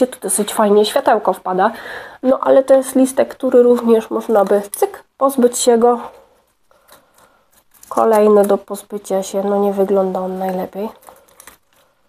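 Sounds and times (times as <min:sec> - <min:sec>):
person speaking: 0:00.0 - 0:06.4, 0:07.7 - 0:11.1.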